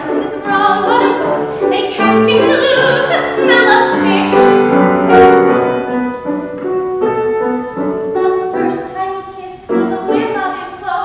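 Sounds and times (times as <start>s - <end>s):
grand piano playing: 0.0s - 10.8s.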